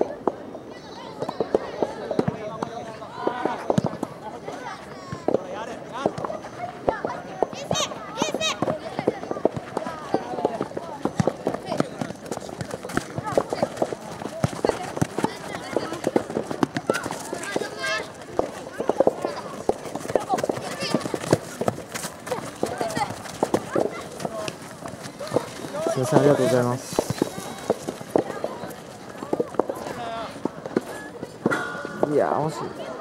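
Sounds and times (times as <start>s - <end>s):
children calling and shouting: 0.0s - 33.0s.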